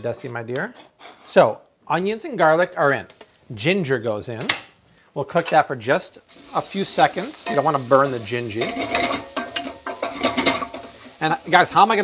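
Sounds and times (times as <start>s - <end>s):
onions sizzling: 6.1s - 12.0s
wooden spoon scraping saucepan: 7.4s - 11.3s.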